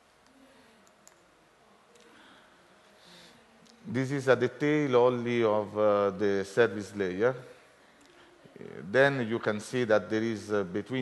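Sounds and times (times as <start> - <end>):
faint click: 0.2 - 1.3.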